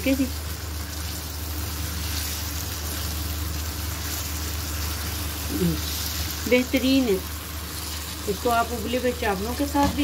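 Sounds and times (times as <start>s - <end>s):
chicken sizzling in oil: 0.0s - 10.0s.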